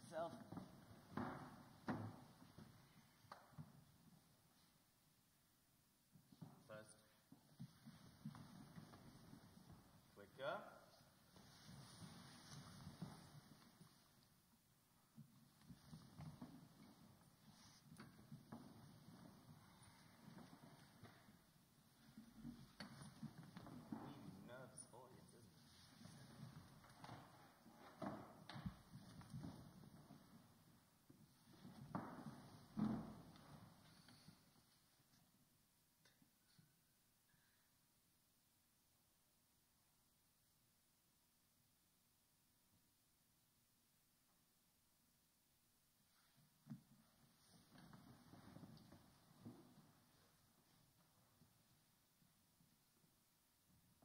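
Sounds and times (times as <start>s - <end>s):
faint rustling of clothing and seats: 0.0s - 36.9s, 45.9s - 54.0s.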